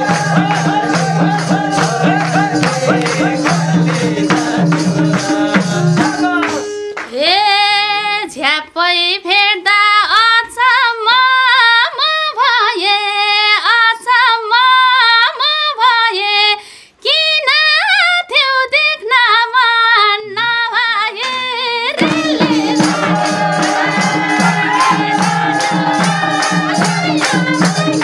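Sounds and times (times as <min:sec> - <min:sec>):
woman singing unaccompanied: 0:00.0 - 0:28.0.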